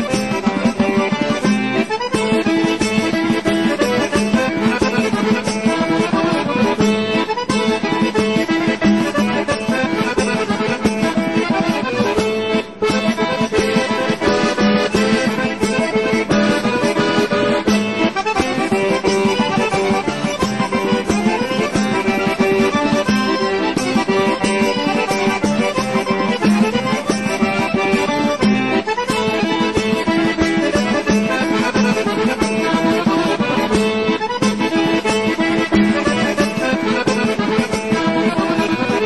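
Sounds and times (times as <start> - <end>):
accordion folk tune: 0.0 - 39.0.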